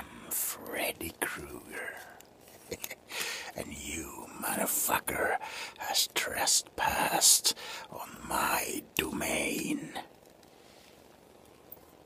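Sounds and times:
man whispering: 0.0s - 2.4s, 3.2s - 10.2s.

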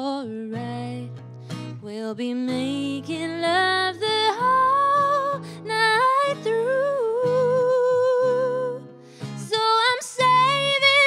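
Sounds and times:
woman singing with vibrato: 0.0s - 1.2s, 1.8s - 11.0s
strummed acoustic guitar: 0.0s - 11.0s.

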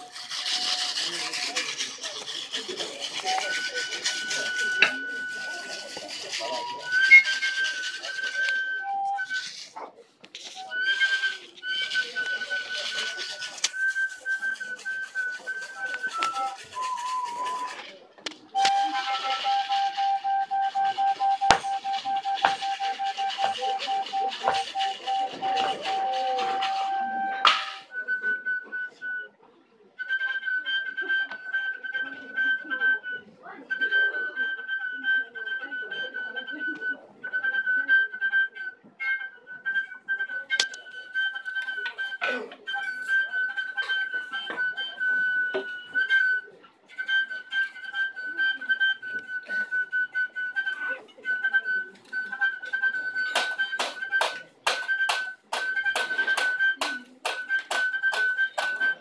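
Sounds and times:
high whistle-like tone: 0.0s - 9.8s, 10.4s - 29.4s, 38.0s - 59.0s.

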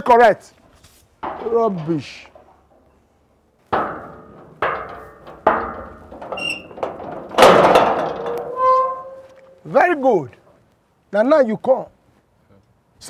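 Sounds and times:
metal gate clattering open: 1.2s - 3.0s, 3.7s - 9.7s
knocks on metal gate: 3.7s - 9.2s
gate squealing: 3.8s - 9.7s.

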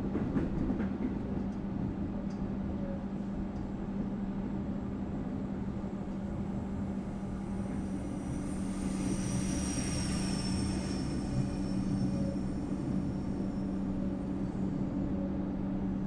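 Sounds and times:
electric train hum: 0.0s - 16.0s.

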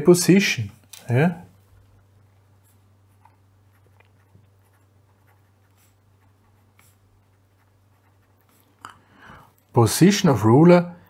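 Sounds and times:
low steady hum: 0.0s - 11.0s
pen scratching on paper: 2.6s - 8.8s.

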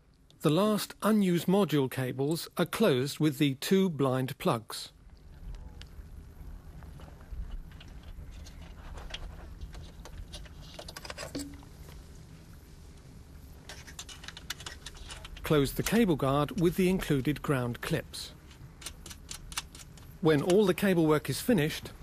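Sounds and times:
low background rumble: 4.9s - 22.0s.

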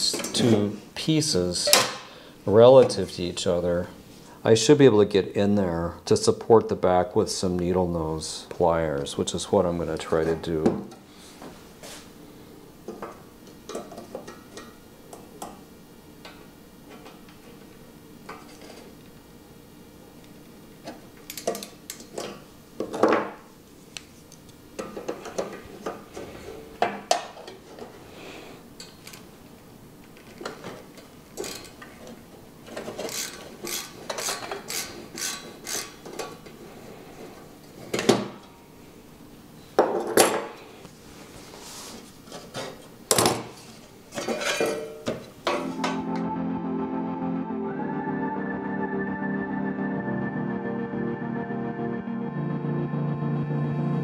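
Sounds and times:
metal tools clicking and scraping: 32.8s - 36.3s.

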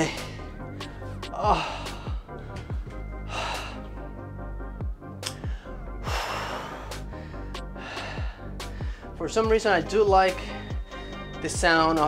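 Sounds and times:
man gasping exhales: 0.0s - 2.3s, 3.2s - 4.0s
music with bass-drum beat: 0.0s - 12.0s.

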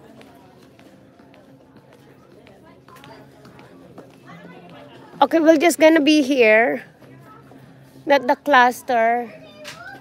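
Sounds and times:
distant shoppers' voices: 0.0s - 10.0s.

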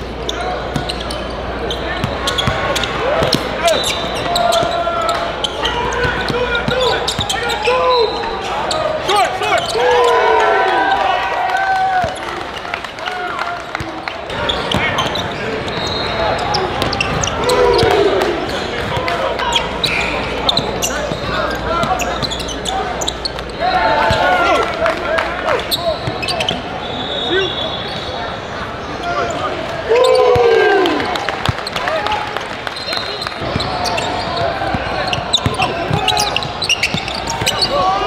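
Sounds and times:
shoe squeals: 0.0s - 10.4s, 14.3s - 24.4s, 25.6s - 30.6s, 32.7s - 38.0s
indistinct voices in hall: 0.0s - 38.0s.

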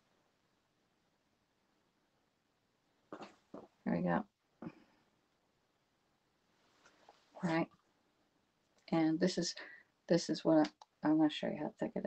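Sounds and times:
woman speaking: 3.8s - 4.3s, 7.4s - 7.7s, 8.9s - 12.0s.

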